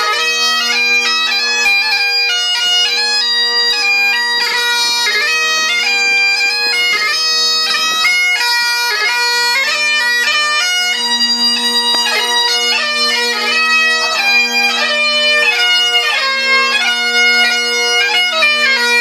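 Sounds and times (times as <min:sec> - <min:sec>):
bagpipe playing a tune: 0:00.0 - 0:19.0.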